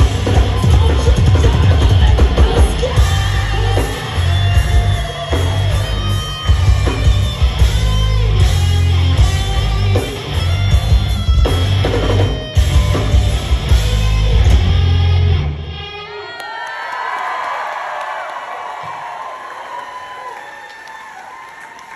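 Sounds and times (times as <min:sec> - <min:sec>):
crowd cheering and whooping: 0:00.0 - 0:08.5, 0:15.8 - 0:21.9
hard rock band playing live: 0:00.0 - 0:16.1.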